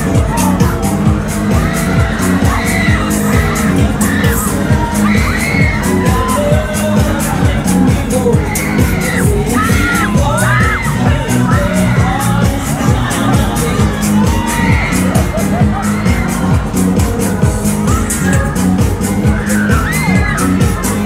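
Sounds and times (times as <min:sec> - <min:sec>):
loud dance music: 0:00.0 - 0:21.0
riders shouting and cheering: 0:00.0 - 0:21.0.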